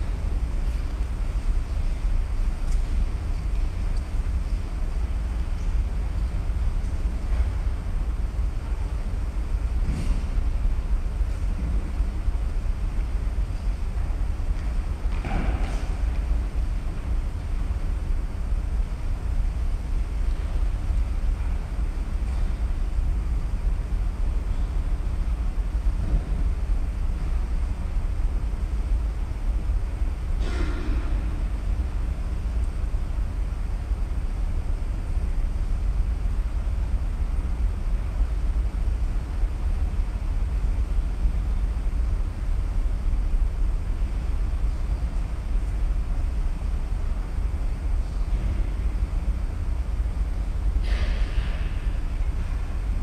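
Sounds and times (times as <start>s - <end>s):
low rumble of room noise: 0.0s - 53.0s.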